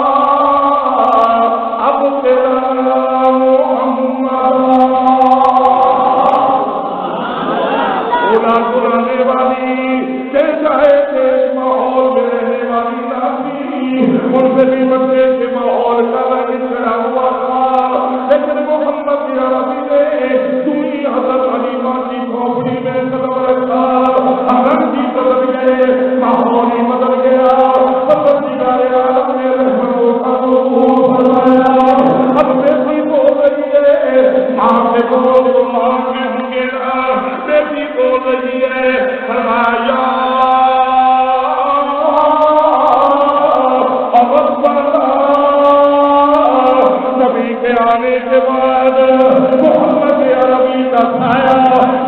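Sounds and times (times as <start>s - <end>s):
man chanting over loudspeaker: 0.0s - 52.0s.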